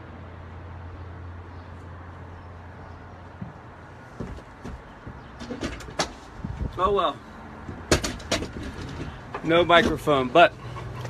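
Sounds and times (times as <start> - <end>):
sharp knocks and clicks: 4.2 - 6.2, 7.6 - 10.0.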